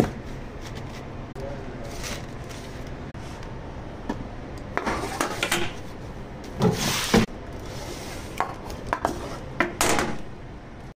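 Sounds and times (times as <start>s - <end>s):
metal pan sliding scrape: 6.6s - 8.4s.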